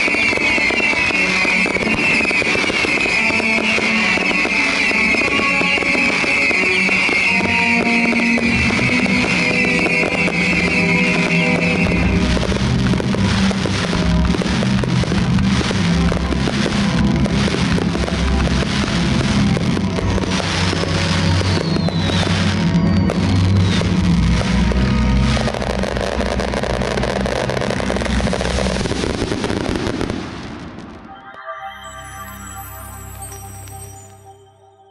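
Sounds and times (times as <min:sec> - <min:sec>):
loud music: 0:00.0 - 0:29.1, 0:31.0 - 0:34.9
fireworks crackling and banging: 0:00.0 - 0:34.2.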